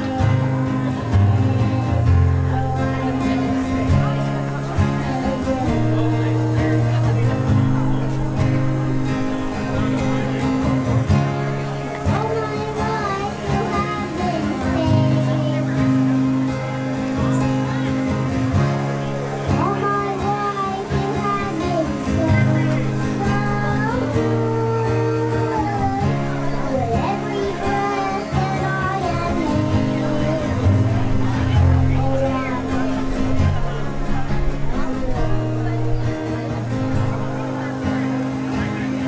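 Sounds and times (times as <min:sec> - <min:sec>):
person singing: 0:00.0 - 0:18.2, 0:19.3 - 0:39.0
acoustic guitar strumming: 0:00.0 - 0:39.0.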